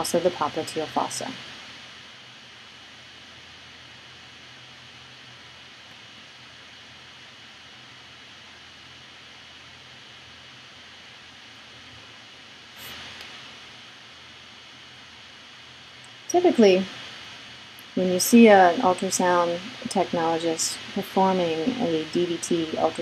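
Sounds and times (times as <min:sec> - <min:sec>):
faint low hum: 0:00.0 - 0:23.0
recording hiss: 0:00.0 - 0:23.0.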